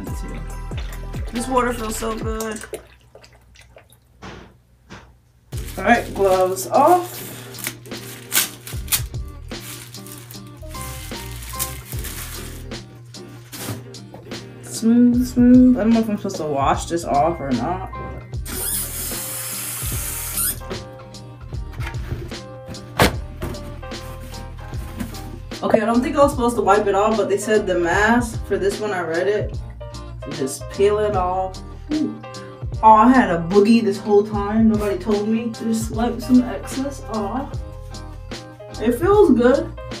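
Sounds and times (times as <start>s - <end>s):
background music: 0.0s - 2.9s, 4.3s - 40.0s
water dripping: 0.0s - 4.2s
water splashing on face: 0.6s - 4.2s
sharp knock: 4.2s - 5.2s.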